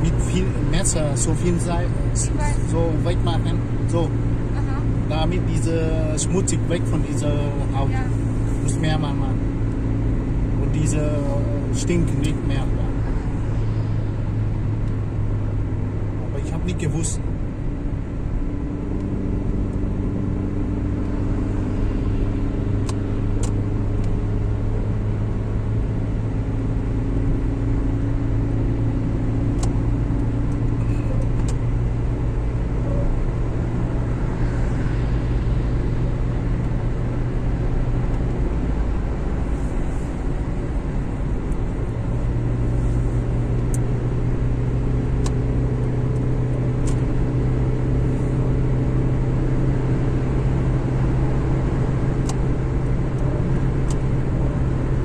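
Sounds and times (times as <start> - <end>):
car engine hum: 0.0 - 55.0
tyre and road noise: 0.0 - 55.0.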